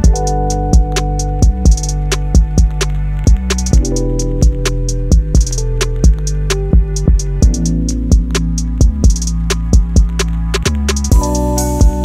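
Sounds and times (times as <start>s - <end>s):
background music with steady beat: 0.0s - 12.0s
bass drum: 0.0s - 12.0s
hi-hat ticks: 0.0s - 12.0s.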